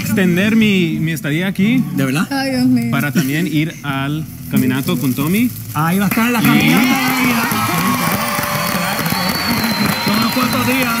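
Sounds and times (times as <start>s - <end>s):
people talking over one another: 5.8s - 11.0s.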